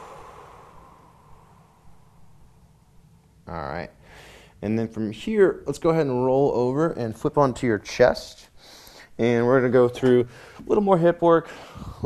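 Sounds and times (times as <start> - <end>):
man exhaling softly: 0.0 - 2.4, 11.5 - 12.0.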